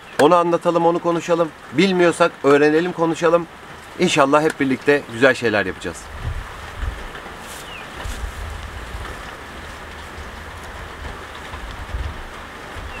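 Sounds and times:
steady background hiss: 0.0s - 13.0s
wind rumble on microphone: 6.0s - 13.0s.

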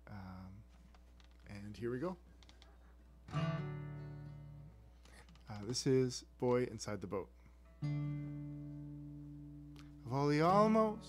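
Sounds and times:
acoustic guitar chord strummed: 3.3s - 4.9s, 7.8s - 11.0s.

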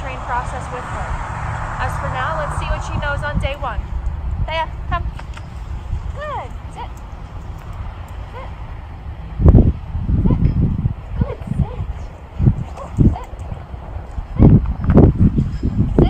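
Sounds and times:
steady low rumble: 0.0s - 16.0s
wind gusts buffeting microphone: 0.0s - 16.0s.

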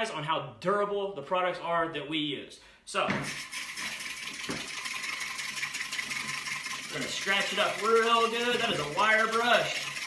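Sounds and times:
wire brush scratching wood: 3.2s - 10.0s.

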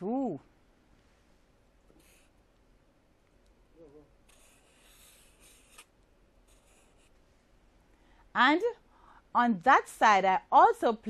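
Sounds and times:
marker scratching on paper: 1.9s - 2.4s, 4.3s - 5.9s, 6.5s - 7.2s.

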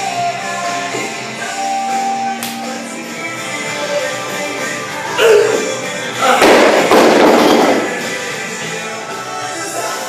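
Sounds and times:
rock music: 0.0s - 10.0s
barbell dropped with loud thud: 6.4s - 8.0s.

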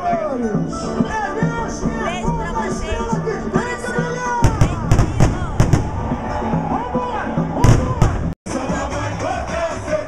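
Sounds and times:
voices: 0.0s - 5.8s
samba music: 0.0s - 10.0s.

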